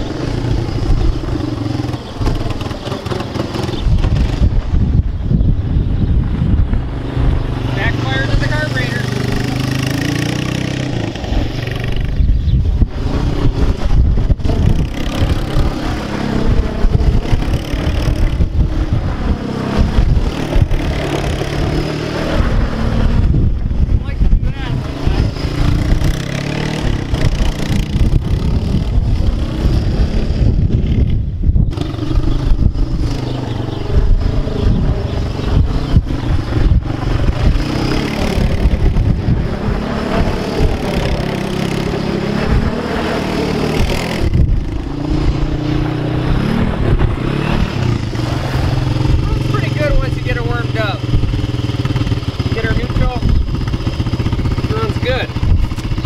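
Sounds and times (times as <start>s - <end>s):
quad bike engine revving: 0.0s - 56.0s
wind rumbling on microphone: 0.0s - 56.0s.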